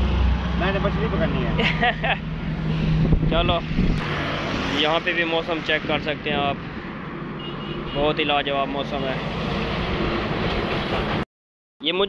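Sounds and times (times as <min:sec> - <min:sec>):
road traffic rumble: 0:00.0 - 0:11.2.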